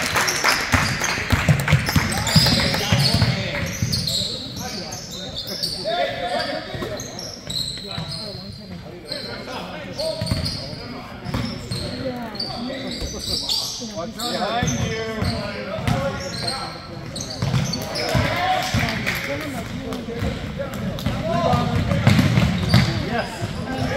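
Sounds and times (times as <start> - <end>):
shoe squeaks: 2.2 - 18.3, 22.5 - 23.9.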